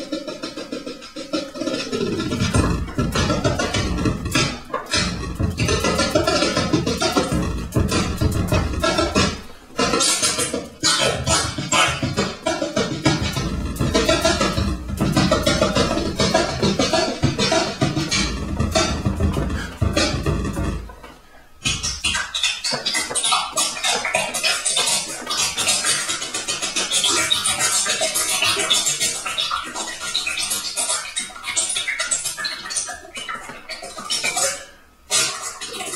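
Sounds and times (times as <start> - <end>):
live electronic music: 0.0 - 30.5
glitchy scratch-like sounds: 0.0 - 35.9
heavy bass: 2.0 - 21.0.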